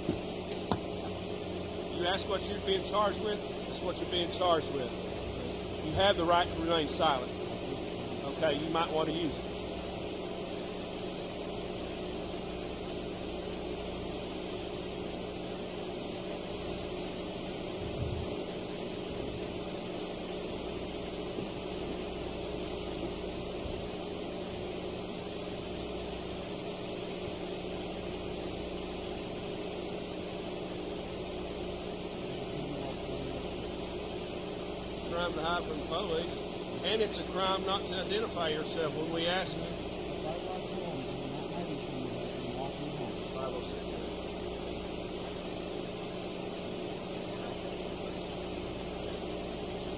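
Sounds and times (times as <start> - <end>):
steady machine hum with hiss: 0.0 - 49.9.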